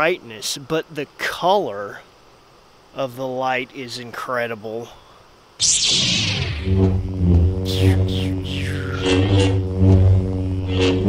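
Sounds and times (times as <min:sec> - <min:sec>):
swooping sounds falling in pitch: 0:05.6 - 0:11.0.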